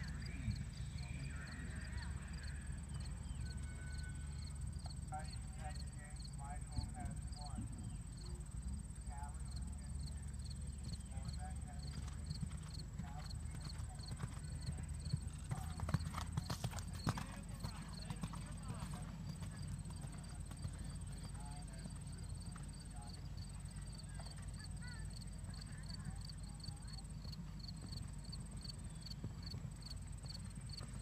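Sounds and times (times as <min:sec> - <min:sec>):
horse hoofbeats on dirt: 0:09.6 - 0:31.0.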